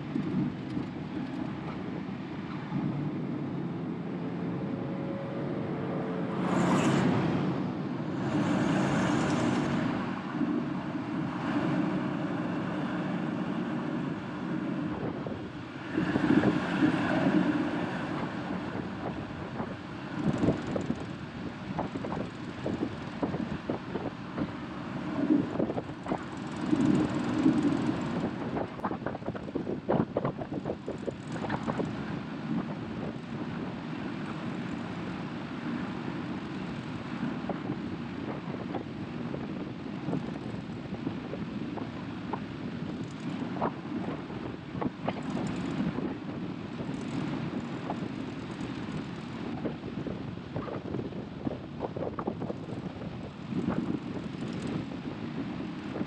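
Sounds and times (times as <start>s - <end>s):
wind on microphone: 0.0s - 56.0s
diesel engine running: 4.2s - 56.0s.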